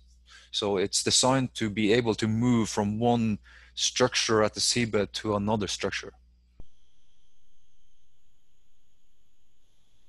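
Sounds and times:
faint high-pitched whines: 0.0 - 10.0
low hum and hiss: 0.0 - 10.0.

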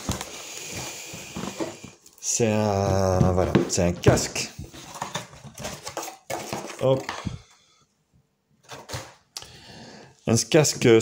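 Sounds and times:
cardboard rustling and scraping: 0.0 - 2.0, 2.9 - 7.3.

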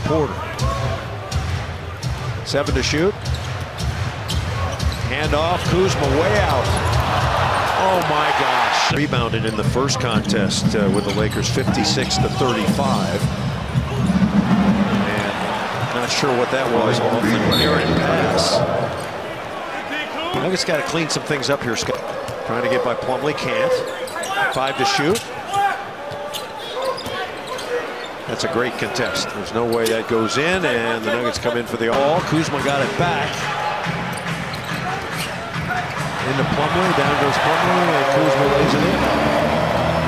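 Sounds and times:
arena crowd noise: 0.0 - 40.0.

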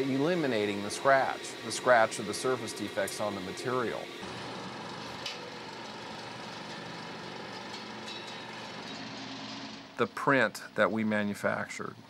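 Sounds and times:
film projector whirring: 0.0 - 10.0.

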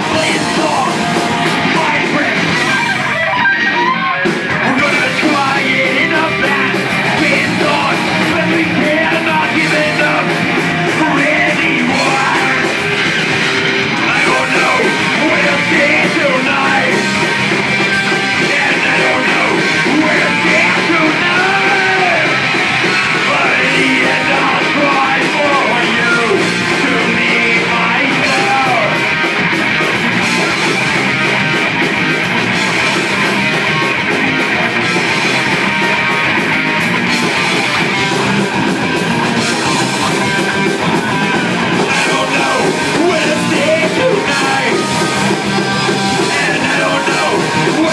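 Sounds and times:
person singing: 0.0 - 13.1, 14.0 - 17.2, 18.2 - 29.0, 41.7 - 47.9
drum kit: 0.0 - 47.9
electric guitars: 0.0 - 47.9.

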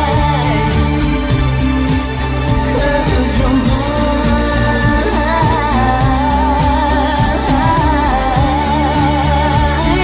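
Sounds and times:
woman singing: 0.0 - 1.7, 2.7 - 10.0
steady drum beat: 0.0 - 10.0.

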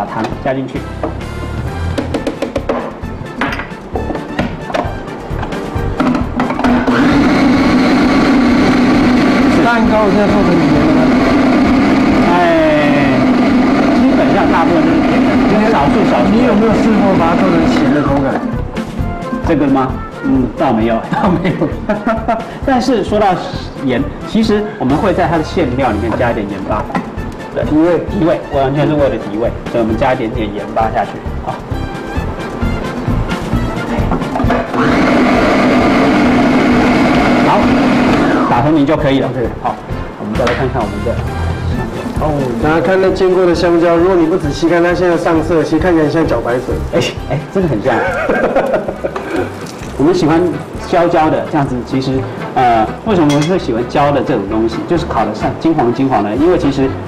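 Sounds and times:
food processor blending: 6.0 - 18.5, 34.1 - 38.8.

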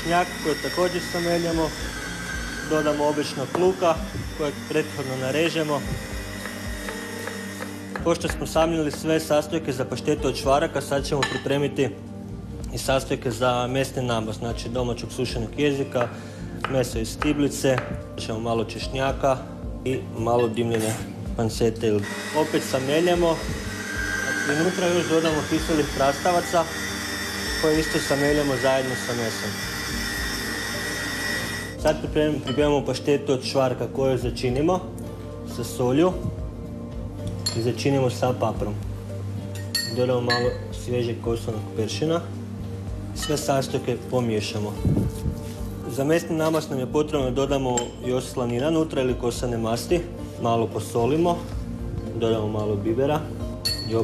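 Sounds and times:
electric meat grinder humming: 0.0 - 8.2, 22.0 - 31.8.

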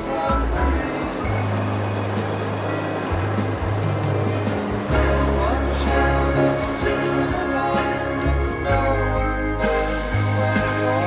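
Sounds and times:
stream running over stones: 0.0 - 8.3
background music with bass: 0.0 - 11.0.

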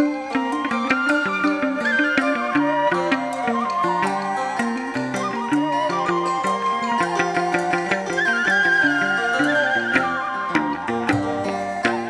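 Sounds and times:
high wavering melodic line: 0.0 - 12.0
plucked string melody: 0.0 - 12.0.

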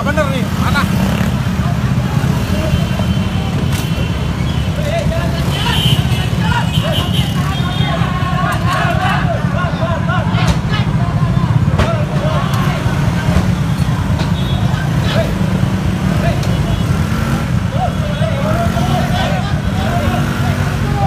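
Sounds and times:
people calling out: 1.1 - 21.0.

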